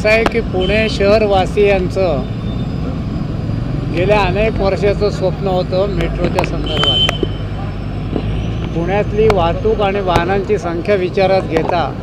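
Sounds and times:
man speaking: 0:00.0 - 0:02.3, 0:03.9 - 0:07.1, 0:08.8 - 0:12.0.

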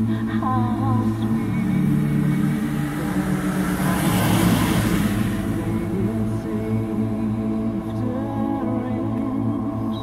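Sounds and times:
music with long held tones: 0:00.0 - 0:10.0
car driving past: 0:00.3 - 0:09.7.

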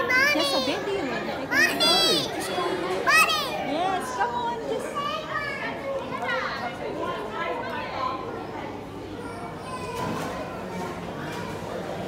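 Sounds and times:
child chatter and voices: 0:00.0 - 0:12.0.

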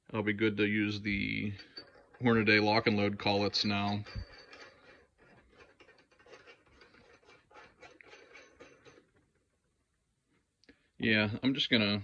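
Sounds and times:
metal threads scraping and clicking: 0:01.1 - 0:09.7.

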